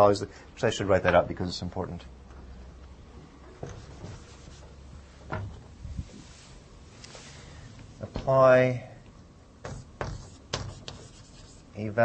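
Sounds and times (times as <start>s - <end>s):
chalk writing on blackboard: 9.6s - 11.8s.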